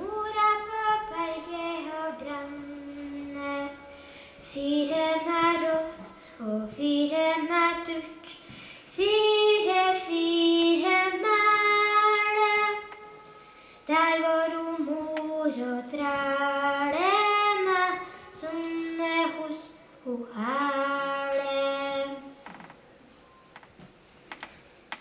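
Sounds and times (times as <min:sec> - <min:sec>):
woman singing unaccompanied: 0:04.5 - 0:08.4, 0:09.0 - 0:13.0, 0:13.9 - 0:22.3.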